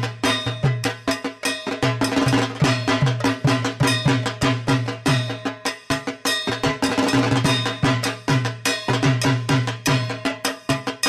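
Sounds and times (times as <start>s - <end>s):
metallic bell-like strikes: 0.0s - 11.0s.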